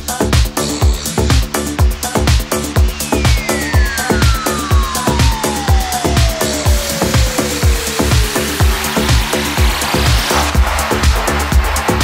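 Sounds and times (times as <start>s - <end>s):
kick drum beat: 0.0s - 12.0s
rising noise sweep: 1.6s - 12.0s
gliding synth tone: 2.1s - 10.6s.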